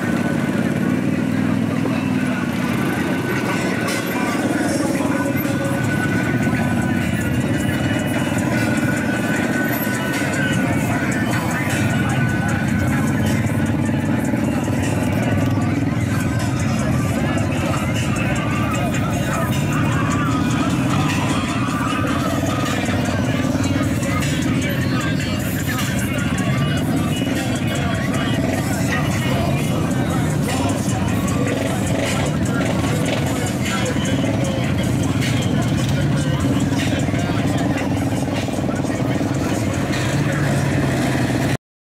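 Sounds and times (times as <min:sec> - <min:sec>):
music: 0:00.0 - 0:41.6
off-road vehicles driving past: 0:00.0 - 0:41.6
voices: 0:00.0 - 0:41.6.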